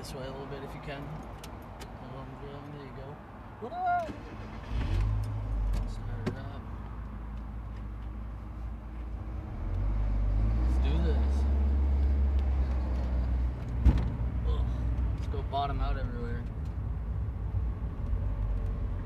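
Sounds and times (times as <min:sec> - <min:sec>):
car engine rumbling: 0:00.0 - 0:19.0
car bottoming out thump: 0:13.8 - 0:14.2.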